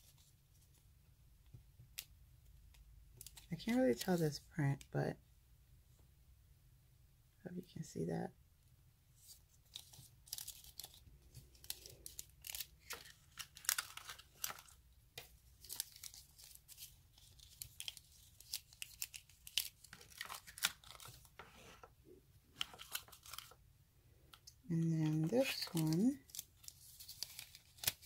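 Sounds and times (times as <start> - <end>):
foil crinkling and rustling: 9.7 - 14.8, 15.5 - 21.4, 22.6 - 23.6, 25.0 - 28.0.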